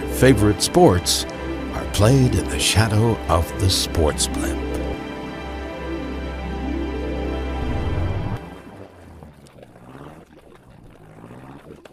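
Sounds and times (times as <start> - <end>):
low wavering drone: 0.0 - 11.6.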